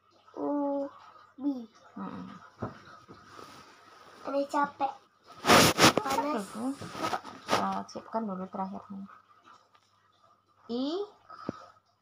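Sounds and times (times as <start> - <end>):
faint rustling: 5.3 - 8.0.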